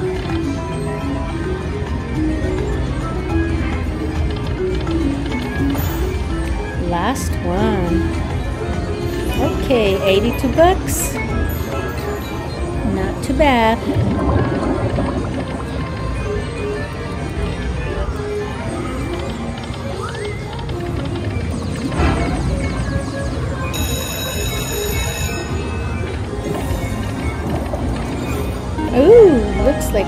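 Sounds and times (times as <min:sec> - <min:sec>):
slot machine game music: 0:00.0 - 0:30.0
high chiming tone: 0:22.9 - 0:30.0.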